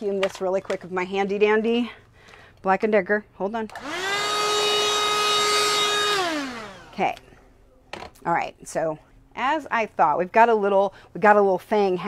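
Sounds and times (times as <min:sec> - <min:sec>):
vacuum cleaner motor whine: 0:03.7 - 0:07.0.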